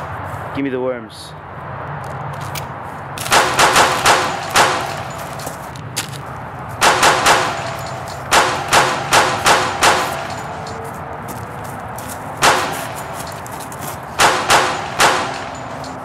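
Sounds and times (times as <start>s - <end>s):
handgun gunshots: 3.2s - 5.0s, 6.8s - 7.7s, 8.3s - 10.4s, 12.4s - 12.9s, 14.2s - 15.6s.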